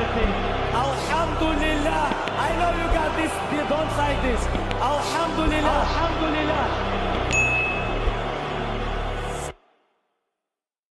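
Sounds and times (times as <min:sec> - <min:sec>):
low bass backing music: 0:00.0 - 0:09.5
notification bell ding: 0:07.3 - 0:07.8.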